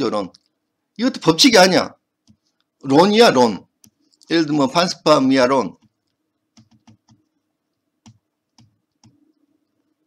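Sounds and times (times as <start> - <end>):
pen stylus tapping on tablet: 5.8 - 7.3, 8.0 - 9.2.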